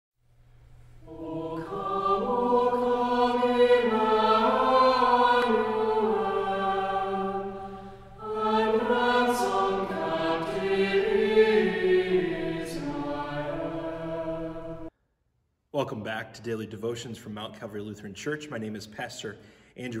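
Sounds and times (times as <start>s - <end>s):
choir singing a hymn: 1.0s - 14.9s.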